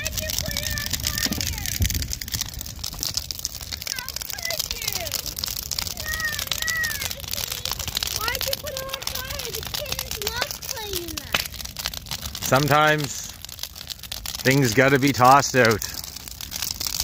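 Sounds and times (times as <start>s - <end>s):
bonfire crackling and popping: 0.0s - 17.0s
high voices calling and squealing: 3.6s - 11.3s.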